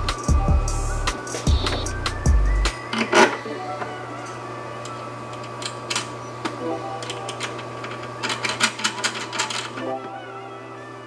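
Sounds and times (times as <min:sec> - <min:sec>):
steady low hum: 0:00.0 - 0:08.4.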